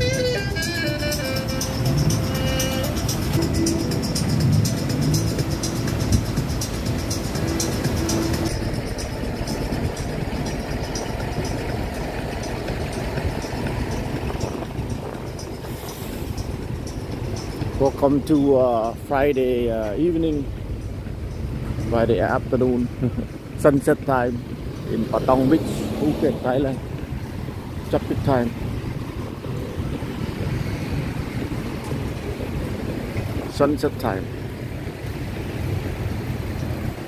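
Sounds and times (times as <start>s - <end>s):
background music with steady beat: 0.0s - 23.4s
outdoor street noise: 0.0s - 37.0s
road traffic hum: 0.0s - 37.0s.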